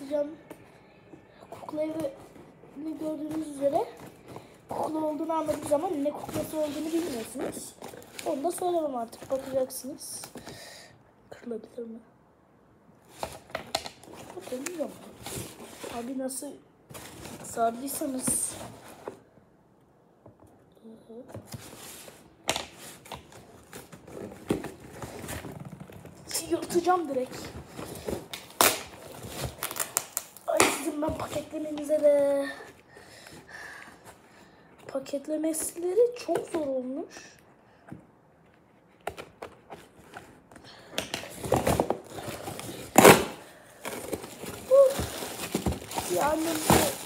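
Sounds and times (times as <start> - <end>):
packaging rustling and scraping: 1.9 - 10.5, 13.0 - 16.3, 16.9 - 19.3, 21.4 - 32.8, 41.2 - 47.0
plastic packaging crinkling: 23.5 - 30.6, 41.3 - 47.0
plastic packaging ripping: 28.3 - 30.9, 41.4 - 47.0.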